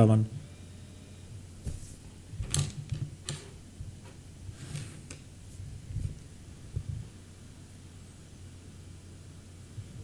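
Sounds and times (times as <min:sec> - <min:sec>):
faint steady hum: 0:00.0 - 0:10.0
rustles and taps on microphone: 0:01.6 - 0:02.0.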